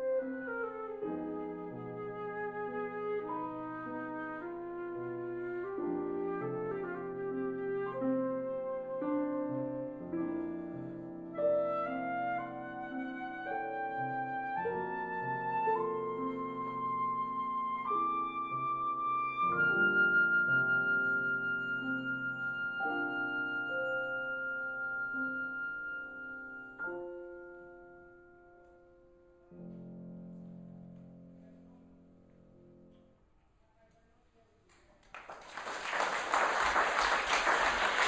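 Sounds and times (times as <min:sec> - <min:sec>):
grand piano: 0:00.0 - 0:33.5
flute playing held notes: 0:11.5 - 0:26.9.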